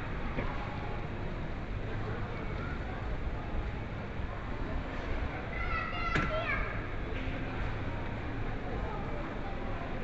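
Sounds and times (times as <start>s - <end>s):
low hum of supermarket: 0.0s - 10.0s.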